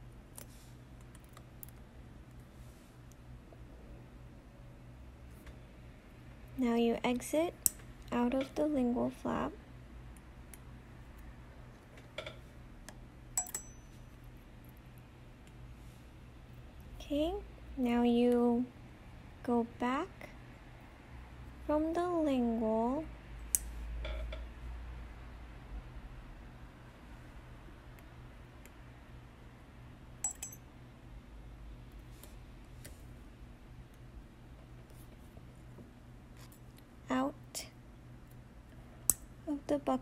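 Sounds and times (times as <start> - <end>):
low steady hum: 0.0 - 40.0
metallic clink ringing: 13.4 - 14.1, 30.2 - 30.7.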